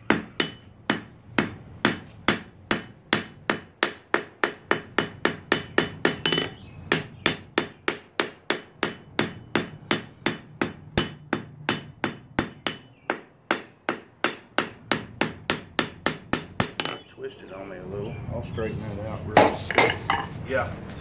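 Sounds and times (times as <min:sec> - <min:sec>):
hammer striking steel on anvil: 0:00.1 - 0:17.1.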